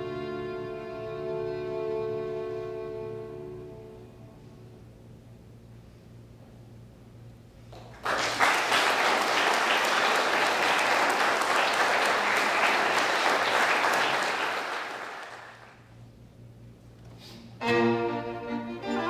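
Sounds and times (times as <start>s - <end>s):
audience applauding: 7.7s - 15.8s.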